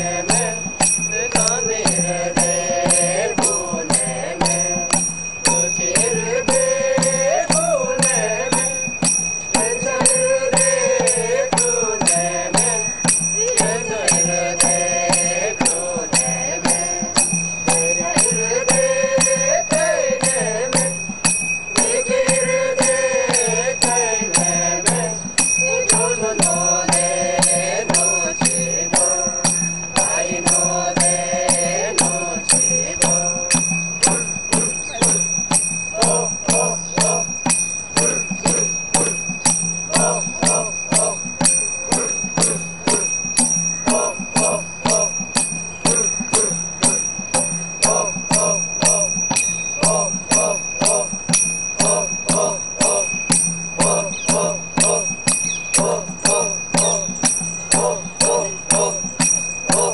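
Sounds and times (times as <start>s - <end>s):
men and women chanting: 0.0s - 59.9s.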